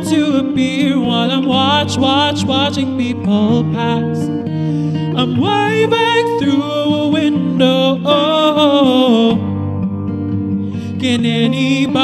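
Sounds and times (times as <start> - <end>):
man singing with vibrato: 0.0 - 9.6, 10.8 - 12.0.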